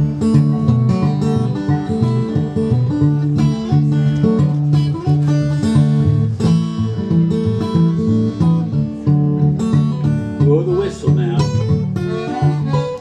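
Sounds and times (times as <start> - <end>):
fingerpicked acoustic guitar: 0.0 - 13.0.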